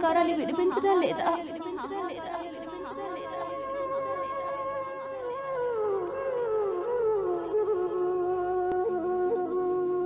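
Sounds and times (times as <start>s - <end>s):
flute-like melody: 3.6s - 10.0s.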